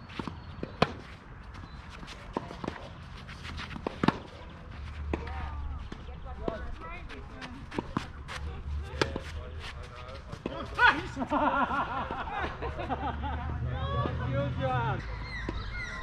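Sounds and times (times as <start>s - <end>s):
tennis racket hitting ball: 3.8s - 4.4s
people's voices: 4.2s - 16.0s.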